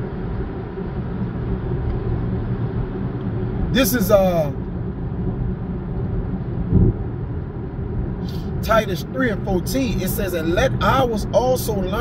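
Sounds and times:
car road and engine noise: 0.0s - 12.0s
low thump: 6.7s - 7.0s.

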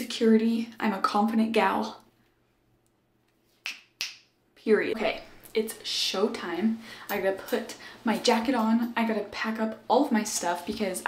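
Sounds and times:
finger snaps: 3.6s - 4.3s.

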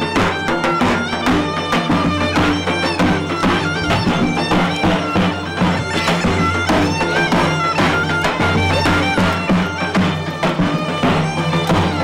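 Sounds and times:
bagpipe playing folk tune: 0.0s - 12.0s
drum beating: 0.0s - 12.0s.

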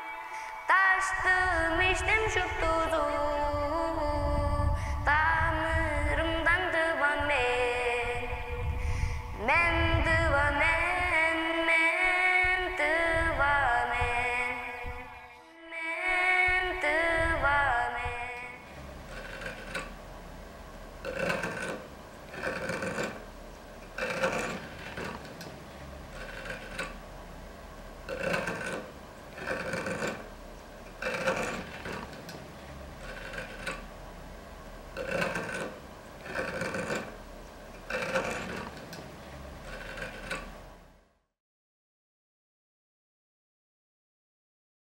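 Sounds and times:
rasp scraping wood: 18.6s - 20.0s, 21.0s - 27.1s, 28.0s - 33.9s, 34.9s - 40.7s.

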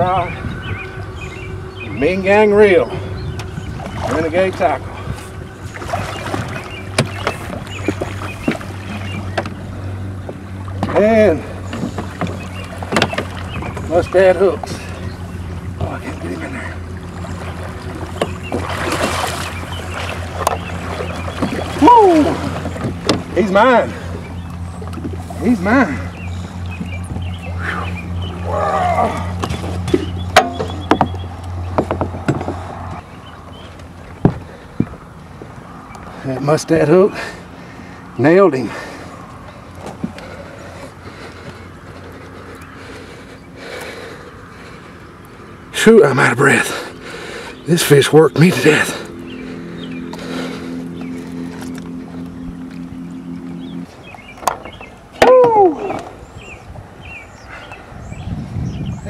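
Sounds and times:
steady low hum: 0.0s - 59.0s
fish splashing: 3.5s - 13.9s, 14.8s - 25.4s.

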